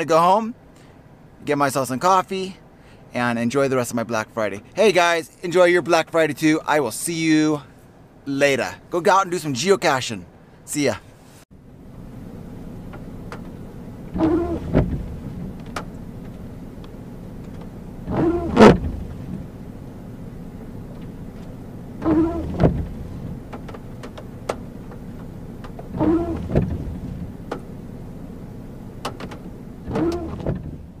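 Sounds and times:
steady low rumble: 0:11.6 - 0:31.0
windshield wipers squeaking: 0:12.0 - 0:31.0.

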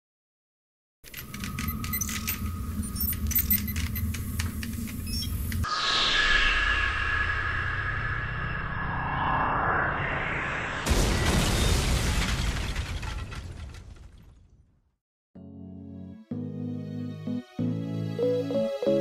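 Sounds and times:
crackling clicking noise: 0:01.1 - 0:05.7
steady tone with falling sweep: 0:05.6 - 0:10.9
low rumble: 0:05.6 - 0:12.0.

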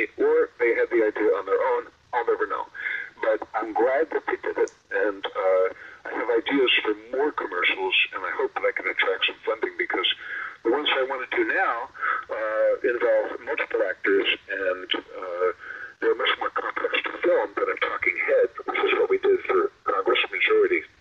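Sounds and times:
person speaking over phone: 0:00.0 - 0:21.0.

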